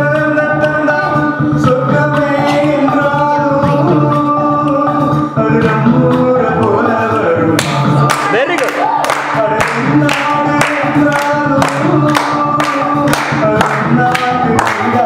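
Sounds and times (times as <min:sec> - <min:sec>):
backing track with steady beat: 0:00.0 - 0:15.0
man singing into microphone: 0:00.0 - 0:15.0.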